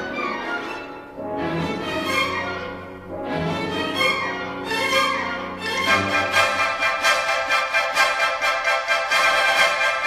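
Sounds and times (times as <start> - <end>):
symphony orchestra with violins: 0.0 - 10.0.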